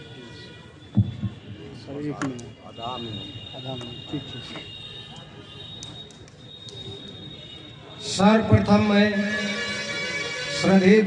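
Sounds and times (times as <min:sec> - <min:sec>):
faint low voices: 0:00.0 - 0:10.8.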